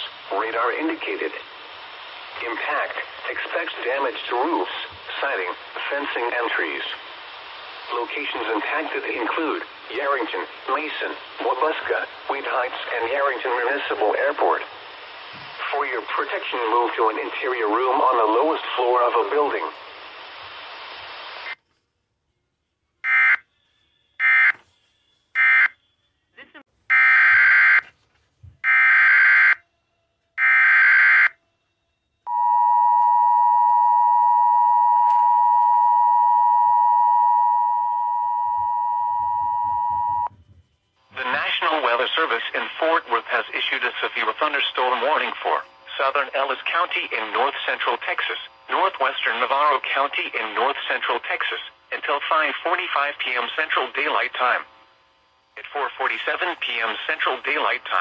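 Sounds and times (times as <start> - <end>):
spoken alert: 0.0 - 1.5, 2.4 - 7.0, 7.9 - 14.7, 15.6 - 19.8, 41.2 - 54.7, 55.6 - 58.0
two-tone attention signal: 32.3 - 40.3.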